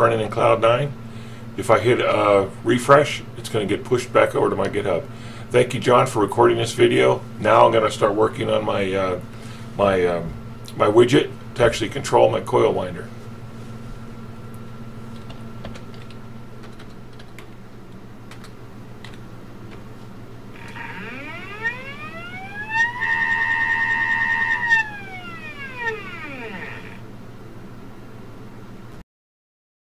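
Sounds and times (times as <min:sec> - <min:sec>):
low steady hum: 0:20.4 - 0:27.5
stepper motor whine: 0:20.6 - 0:27.1.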